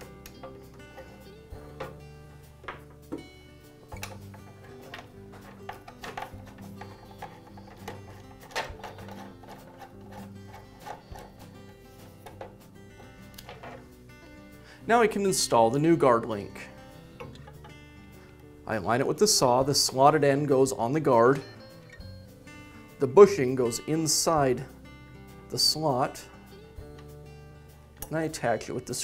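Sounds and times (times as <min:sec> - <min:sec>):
soft background music: 0:00.0 - 0:29.0.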